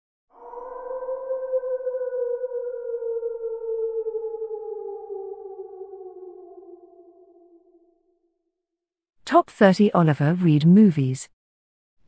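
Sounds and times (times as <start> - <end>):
held synthesizer note sliding down: 0.6 - 8.1.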